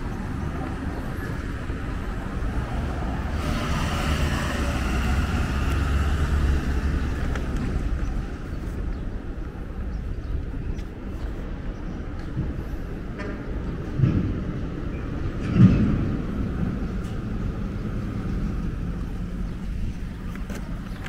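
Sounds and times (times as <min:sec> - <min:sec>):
street traffic rumble: 0:00.0 - 0:21.0.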